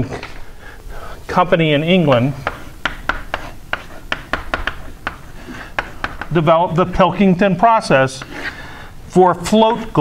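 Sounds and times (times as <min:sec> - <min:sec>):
chalk tapping and scratching: 0:01.4 - 0:08.6.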